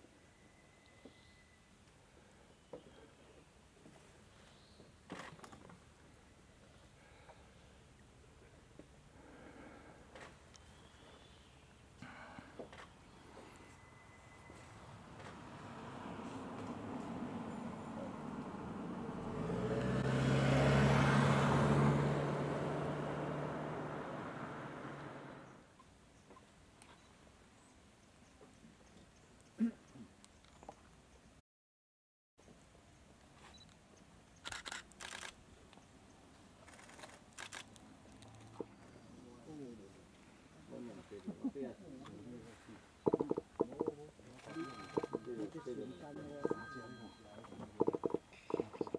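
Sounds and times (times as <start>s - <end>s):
vehicle driving past: 13.4s - 25.6s.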